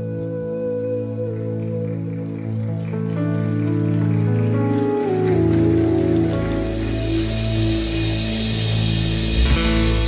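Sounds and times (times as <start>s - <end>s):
held keyboard chords: 0.0s - 10.0s
deep bass note: 7.3s - 10.0s.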